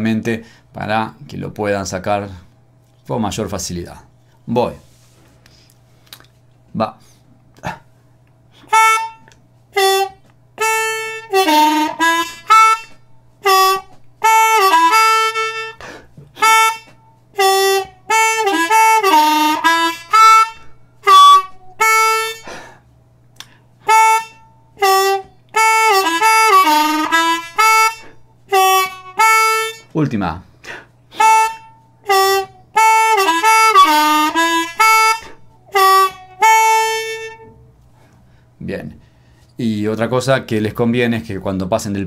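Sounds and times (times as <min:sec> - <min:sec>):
harmonica playing blues: 0:08.5 - 0:22.8, 0:23.4 - 0:30.0, 0:30.6 - 0:38.1.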